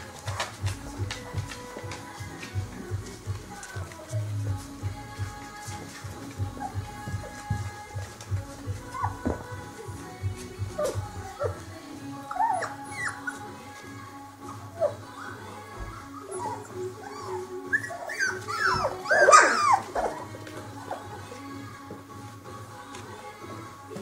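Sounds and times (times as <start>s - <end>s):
background music: 0.0s - 24.0s
puppies whining and yelping: 6.4s - 7.4s, 8.8s - 9.4s, 10.7s - 13.8s, 14.4s - 21.3s.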